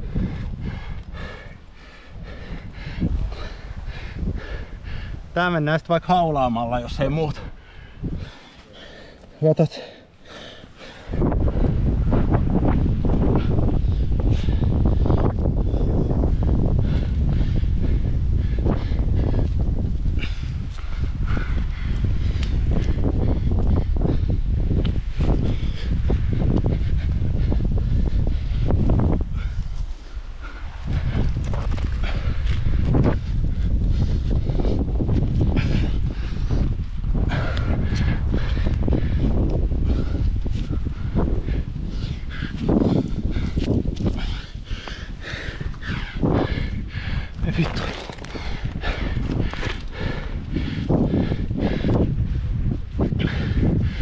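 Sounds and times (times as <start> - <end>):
climber breathing heavily: 0.0 - 54.0
wind rumble on microphone: 0.0 - 54.0.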